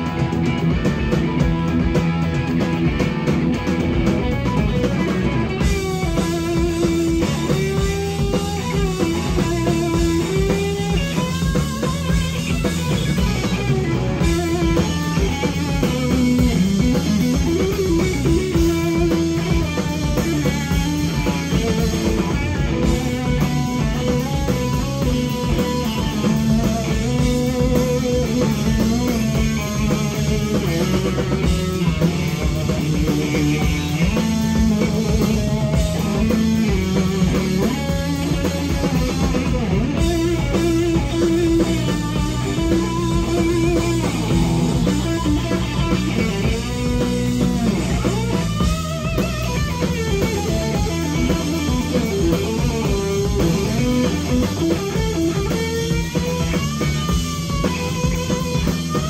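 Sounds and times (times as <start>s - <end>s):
bass guitar: 0.0s - 59.0s
drum kit: 0.0s - 59.0s
electric guitar lead lines: 0.0s - 59.0s.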